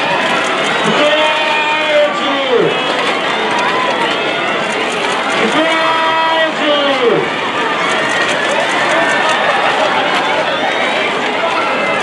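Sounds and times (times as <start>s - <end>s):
crowd shouting: 0.0s - 12.0s.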